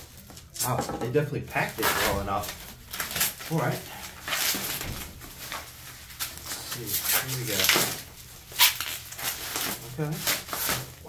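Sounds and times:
bubble wrap crinkling: 1.5s - 11.0s.

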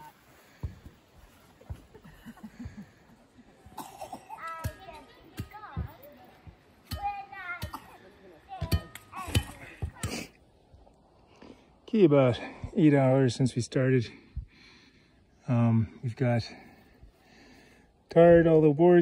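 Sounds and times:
young children's voices: 3.7s - 10.3s.

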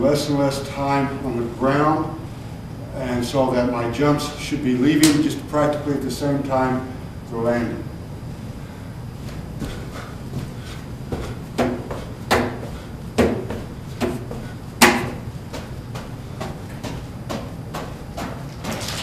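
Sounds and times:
feet thudding on gym floor: 9.2s - 18.8s.

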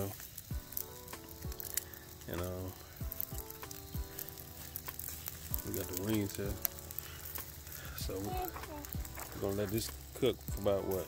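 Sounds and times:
faint background music: 0.0s - 11.0s
food sizzling on a grill: 0.0s - 11.0s
small crackles of coals: 0.0s - 11.0s.

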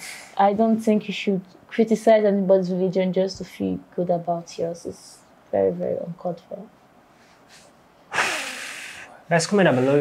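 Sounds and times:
loud breath: 7.3s - 9.2s.

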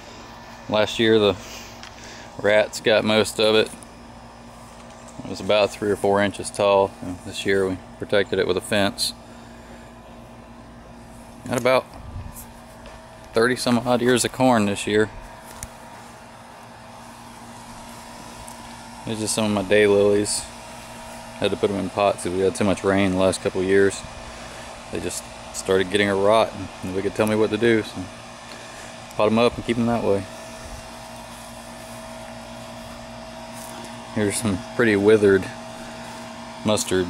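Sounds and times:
steady mechanical hum: 0.0s - 37.0s.

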